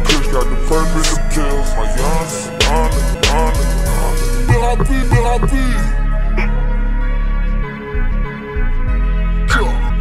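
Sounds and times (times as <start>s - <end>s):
slowed hip-hop beat with heavy bass: 0.0s - 10.0s.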